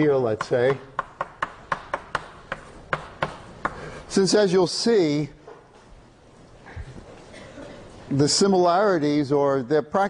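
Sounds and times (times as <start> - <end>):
chalk tapping on a blackboard: 0.3 - 3.9.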